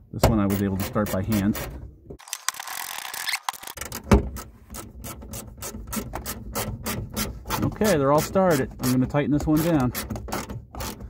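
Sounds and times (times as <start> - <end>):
screws clicking and scraping: 2.2 - 4.0.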